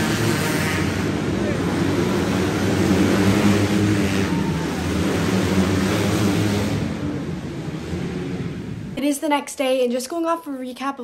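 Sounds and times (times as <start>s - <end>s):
kart engines droning: 0.0s - 9.0s.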